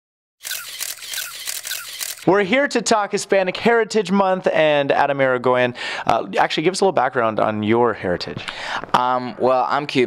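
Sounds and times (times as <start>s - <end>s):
camera shutter clicks: 0.4s - 2.3s.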